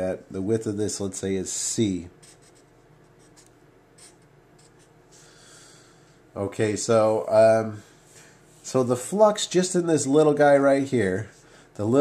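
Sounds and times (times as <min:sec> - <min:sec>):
marker writing on paper: 0:02.2 - 0:04.9.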